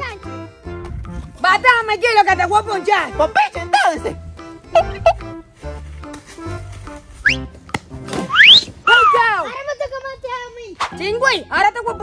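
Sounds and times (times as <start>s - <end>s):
comedic music with stepping bass: 0.0s - 9.2s
rising whistle-like slides: 8.3s - 9.2s.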